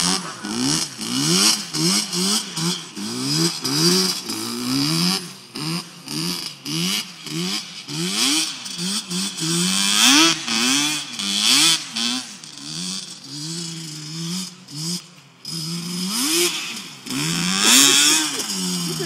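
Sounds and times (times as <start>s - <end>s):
atv engine revving: 0.0s - 19.0s.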